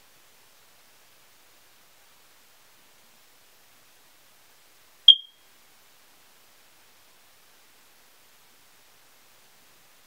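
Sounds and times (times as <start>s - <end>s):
high-pitched electronic beep: 5.1s - 5.3s.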